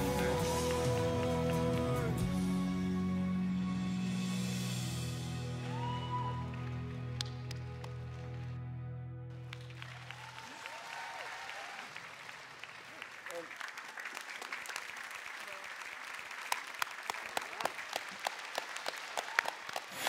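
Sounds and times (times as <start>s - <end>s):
studio audience applauding: 0.0s - 2.7s, 5.4s - 8.6s, 9.3s - 20.0s
held chord of backing music: 0.0s - 9.5s.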